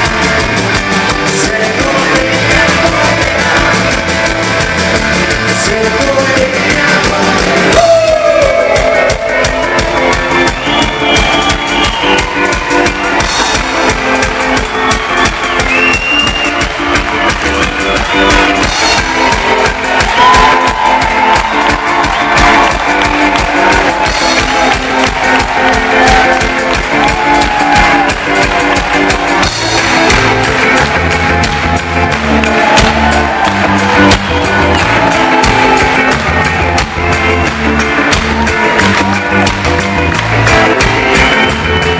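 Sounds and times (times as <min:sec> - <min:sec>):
electric guitar: 0:00.0 - 0:41.9
steady drum beat: 0:00.0 - 0:41.9.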